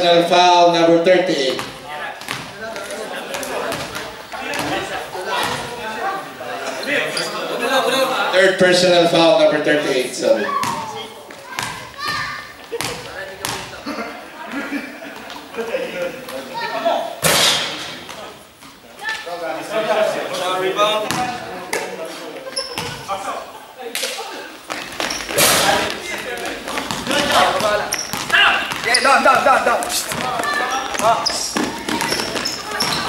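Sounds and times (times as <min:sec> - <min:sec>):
players' voices and shouts: 0:00.0 - 0:33.0
basketball bouncing on floor: 0:01.6 - 0:02.6, 0:10.6 - 0:13.7, 0:26.4 - 0:33.0.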